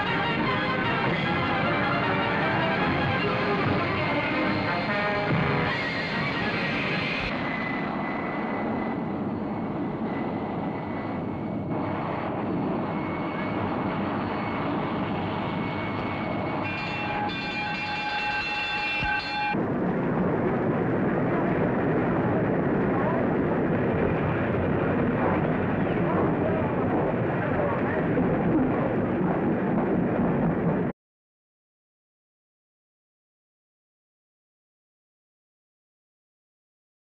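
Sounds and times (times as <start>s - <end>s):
high steady whine: 0.0s - 30.9s.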